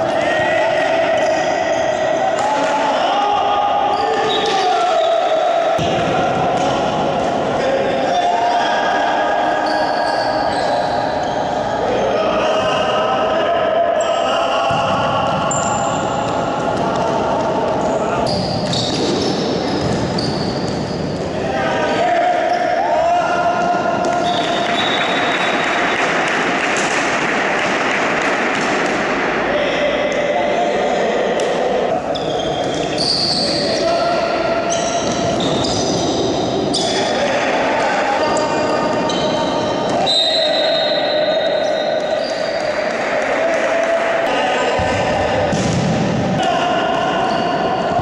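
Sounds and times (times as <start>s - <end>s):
players calling out: 0.0s - 48.0s
ball kicked and bouncing on court: 18.4s - 20.9s.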